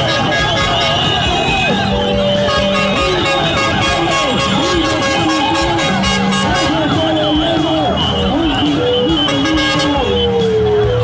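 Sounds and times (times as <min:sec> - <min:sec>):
vehicle horns blasting: 0:00.0 - 0:10.4
siren wails: 0:00.0 - 0:11.0
street traffic: 0:00.0 - 0:11.0.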